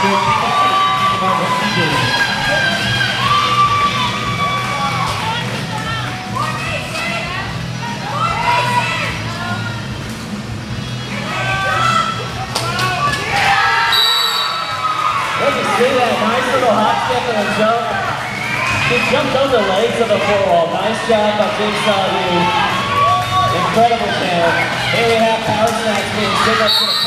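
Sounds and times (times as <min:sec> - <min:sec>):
crowd shouting and cheering: 0:00.0 - 0:27.0
music: 0:00.0 - 0:27.0
referee's whistle blast: 0:13.9 - 0:14.8, 0:26.7 - 0:27.0.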